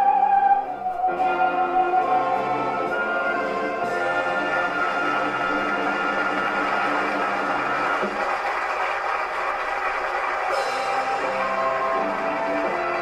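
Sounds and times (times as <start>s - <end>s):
orchestra holding a chord: 1.0s - 8.3s
audience applauding: 2.2s - 13.0s.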